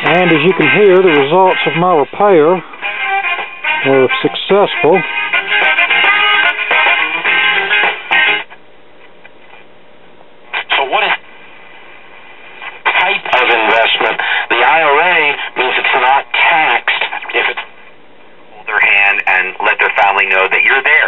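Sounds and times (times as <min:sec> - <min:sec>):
radio voice with wavering pitch: 0:00.0 - 0:02.7, 0:03.8 - 0:05.1, 0:12.8 - 0:17.7, 0:18.6 - 0:21.0
radio programme: 0:00.0 - 0:02.8, 0:03.8 - 0:05.1, 0:10.5 - 0:11.3, 0:12.6 - 0:17.8, 0:18.5 - 0:21.0
radio hiss between stations: 0:10.5 - 0:17.9, 0:18.5 - 0:21.0.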